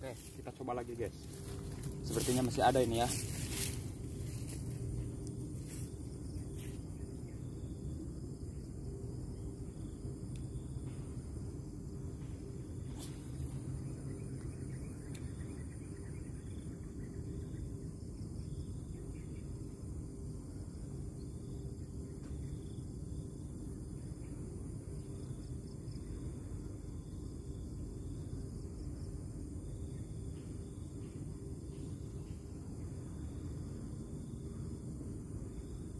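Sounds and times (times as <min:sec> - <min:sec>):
steady low rumble: 0:00.0 - 0:17.8
crickets chirping: 0:00.0 - 0:35.9.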